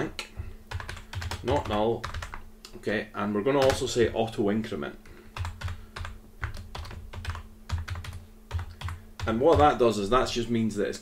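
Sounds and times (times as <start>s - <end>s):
computer keyboard typing: 0.7s - 2.4s, 3.6s - 4.0s, 5.3s - 9.8s.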